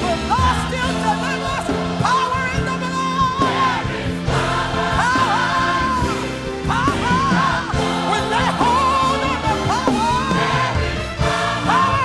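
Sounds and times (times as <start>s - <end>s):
gospel choir singing: 0.0s - 12.0s
instrumental accompaniment: 0.0s - 12.0s.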